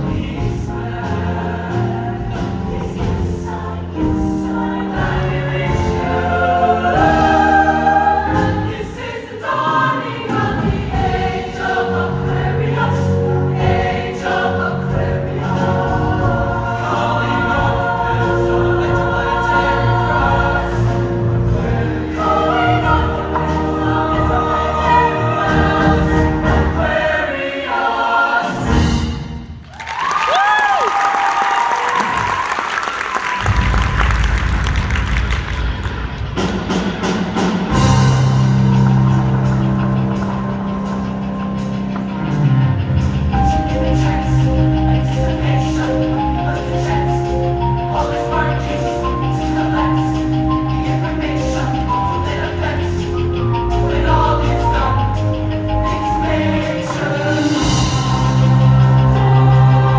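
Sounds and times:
choir singing in harmony: 0:00.0 - 0:29.6, 0:33.4 - 0:59.9
recorded accompaniment: 0:00.0 - 0:30.2, 0:32.3 - 0:59.9
audience cheering and applause: 0:29.6 - 0:36.4.

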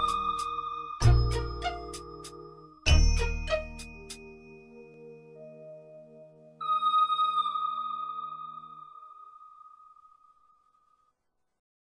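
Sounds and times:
bell-like chime ringing: 0:00.0 - 0:05.8, 0:06.6 - 0:10.4.

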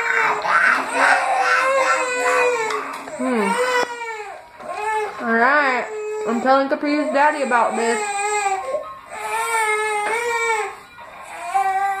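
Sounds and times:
baby crying: 0:00.0 - 0:12.0.

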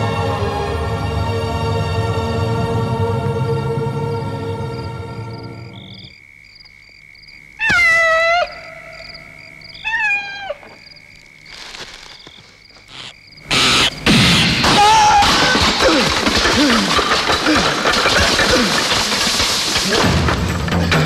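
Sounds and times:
film music: 0:00.0 - 0:05.7
animal crying out: 0:07.6 - 0:10.8, 0:11.5 - 0:14.0
steady high whine: 0:11.2 - 0:14.6.

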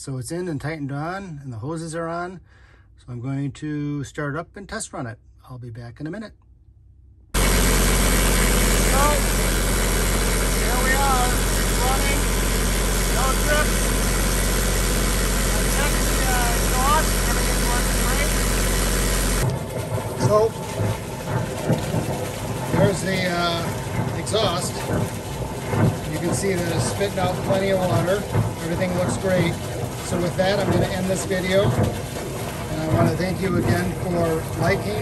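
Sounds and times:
diesel generator running: 0:07.4 - 0:35.0
exhaust spitting water splashes: 0:07.4 - 0:35.0.

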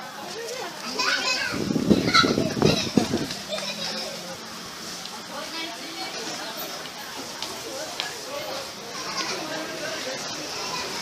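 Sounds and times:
people and children talking: 0:00.0 - 0:11.0.

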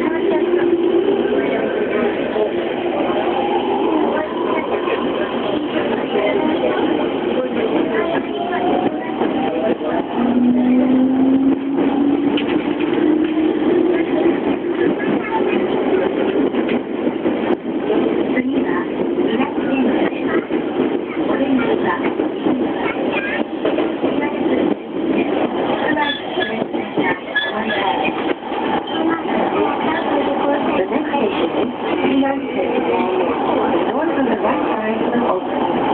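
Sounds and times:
wheels rumbling on rail: 0:00.0 - 0:35.9
rail-joint clicks: 0:04.9 - 0:21.1.

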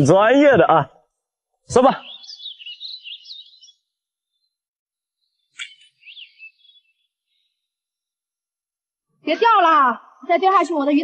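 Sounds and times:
songbird warbling chirps: 0:01.7 - 0:08.1.

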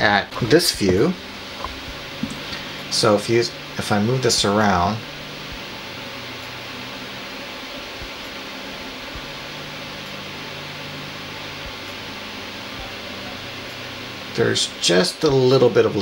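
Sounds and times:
fan-like hiss: 0:00.0 - 0:16.0
low hum: 0:00.0 - 0:16.0
faint low thumps: 0:00.4 - 0:06.0.

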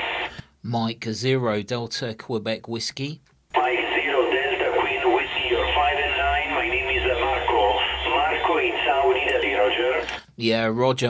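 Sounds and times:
low rumble: 0:03.6 - 0:10.0
thin radio voice: 0:03.6 - 0:10.2.

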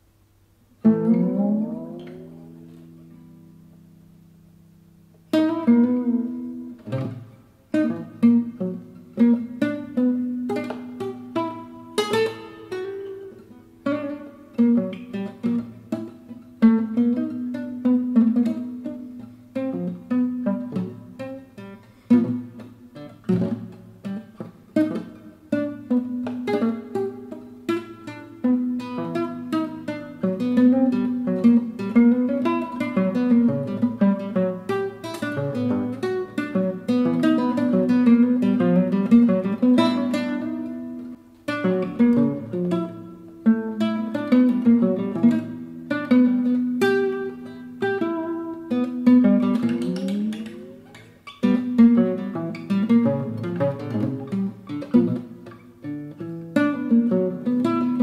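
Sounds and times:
fingerstyle classical guitar: 0:00.0 - 0:58.0.

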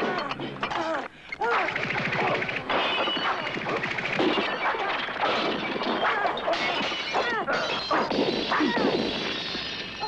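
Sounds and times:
crashing smashing impacts: 0:02.6 - 0:09.8.

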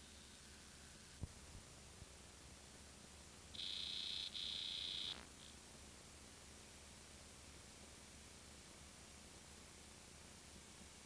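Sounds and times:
faint hum: 0:00.0 - 0:11.0
tape hiss: 0:00.0 - 0:11.0
high-pitched electronic test tone: 0:03.6 - 0:05.3.

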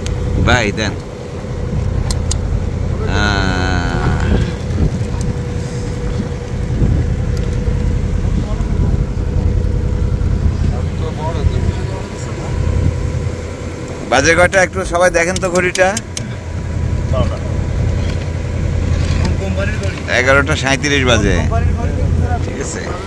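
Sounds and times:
boat engine drone: 0:00.0 - 0:23.0.

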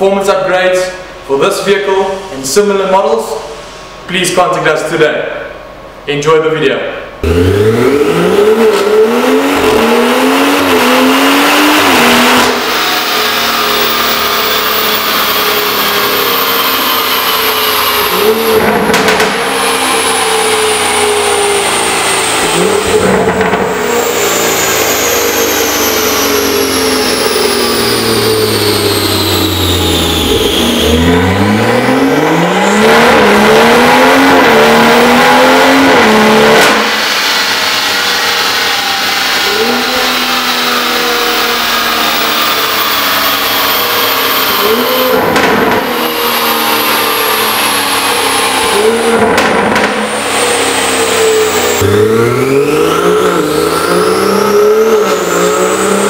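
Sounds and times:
car engine revving hard: 0:07.2 - 0:56.0.

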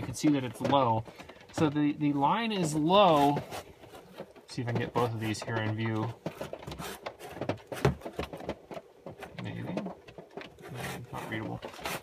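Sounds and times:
handling clicks and knocks: 0:00.0 - 0:12.0.

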